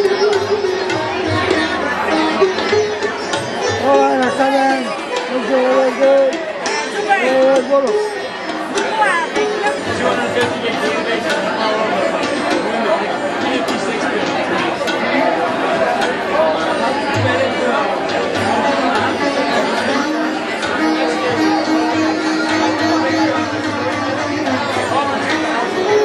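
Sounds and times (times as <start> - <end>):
crowd talking: 0.0 - 26.0
sitar and tabla music: 0.0 - 26.0.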